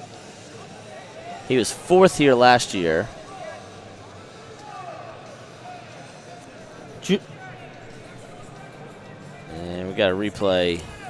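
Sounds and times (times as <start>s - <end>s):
arena background noise: 0.0s - 11.0s
faint distant voices: 0.0s - 11.0s.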